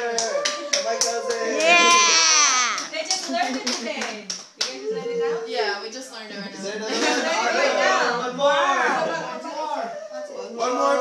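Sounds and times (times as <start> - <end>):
hand claps: 0.0 - 2.1, 2.7 - 4.8
people talking and calling out: 0.0 - 11.0.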